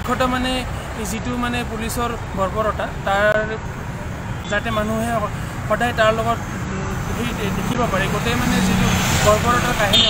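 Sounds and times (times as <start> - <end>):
man talking: 0.0 - 3.8, 4.4 - 10.0
road traffic rumble: 0.0 - 10.0.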